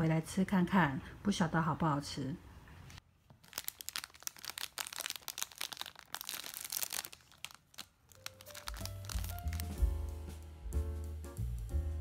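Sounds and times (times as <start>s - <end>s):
plastic wrapper crinkling: 3.2s - 10.0s
background music with bass: 8.9s - 12.0s.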